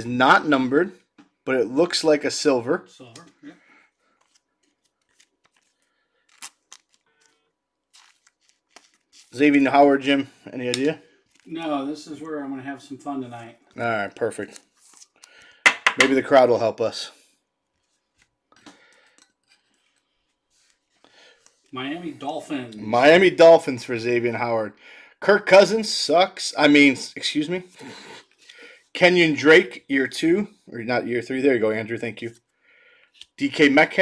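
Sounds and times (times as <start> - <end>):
trading cards clicking and rustling: 4.2 - 9.4
card sliding into plastic sleeve: 7.9 - 9.3.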